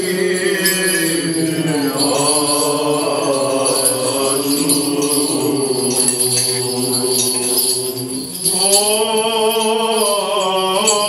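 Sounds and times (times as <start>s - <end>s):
censer bells jingling: 0.0s - 11.0s
chant in gliding notes: 0.0s - 11.0s.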